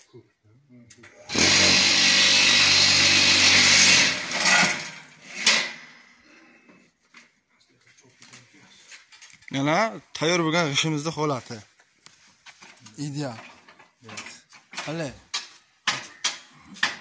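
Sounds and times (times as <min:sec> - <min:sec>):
electric vibrator motor running: 0:01.3 - 0:04.5.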